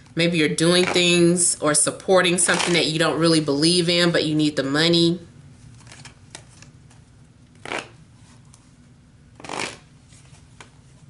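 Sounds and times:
cards being shuffled: 0:05.7 - 0:07.0, 0:07.6 - 0:08.0, 0:09.4 - 0:10.8.

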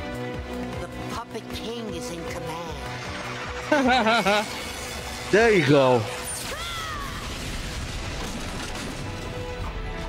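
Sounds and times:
explosion crashing rumble: 0:07.1 - 0:10.0.

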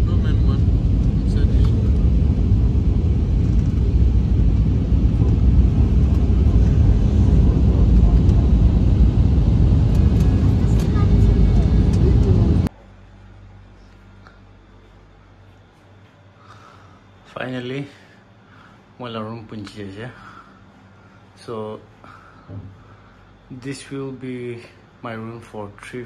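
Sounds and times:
airliner cabin engine rumble: 0:00.0 - 0:12.7.

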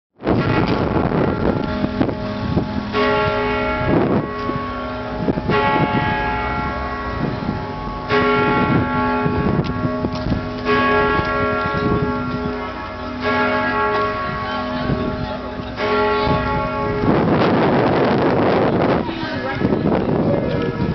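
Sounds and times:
church bells ringing: 0:00.2 - 0:20.0
loud rush of noise: 0:00.2 - 0:20.9.

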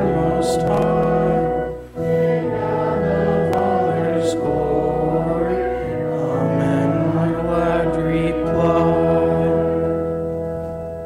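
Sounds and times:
congregation singing a hymn: 0:00.0 - 0:11.0
organ accompaniment: 0:00.0 - 0:11.0.

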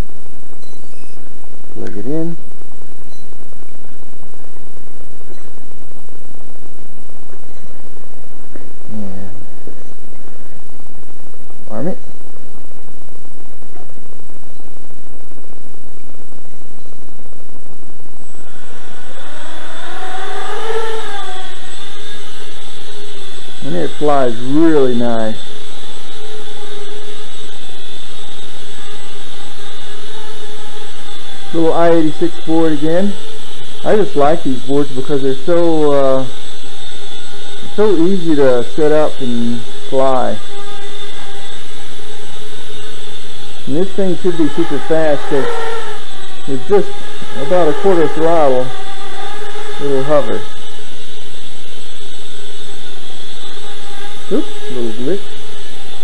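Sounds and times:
motor whine: 0:00.0 - 0:56.0
quadcopter motors whirring: 0:00.0 - 0:56.0.

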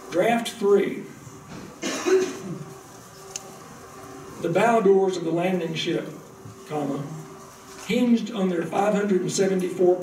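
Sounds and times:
man coughing: 0:01.8 - 0:02.7.

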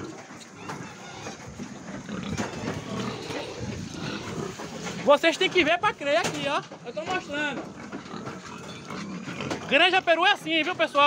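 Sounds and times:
pigs grunting: 0:00.0 - 0:11.0.

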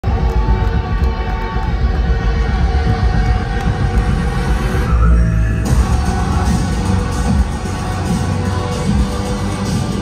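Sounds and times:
loud droning music through speakers: 0:00.0 - 0:10.0.

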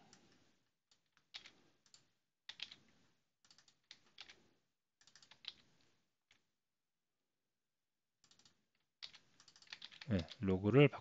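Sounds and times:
faint keyboard typing: 0:00.0 - 0:06.5, 0:08.2 - 0:11.0.

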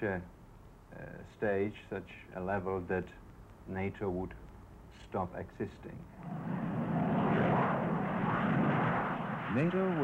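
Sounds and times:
jet engines rushing: 0:06.1 - 0:10.0.

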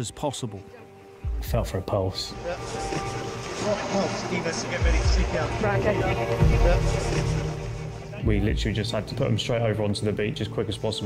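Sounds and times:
background music: 0:00.0 - 0:11.0
heavy low thumps: 0:06.4 - 0:08.8.

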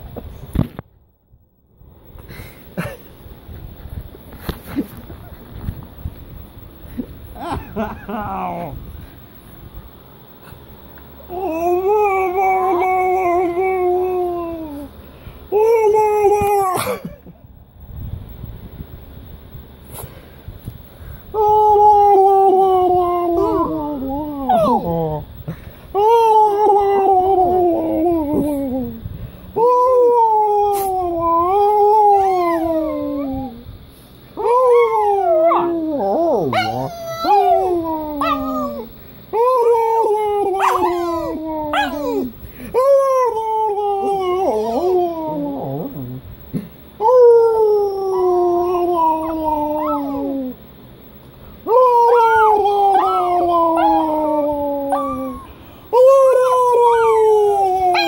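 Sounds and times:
small dog howling: 0:11.3 - 0:16.9, 0:21.4 - 0:25.3, 0:25.9 - 0:33.7, 0:34.4 - 0:46.2, 0:47.0 - 0:50.6, 0:51.6 - 0:58.0
dog cries rising and falling: 0:34.4 - 0:43.0, 0:48.7 - 0:50.6, 0:51.9 - 0:55.5, 0:56.4 - 0:58.0.

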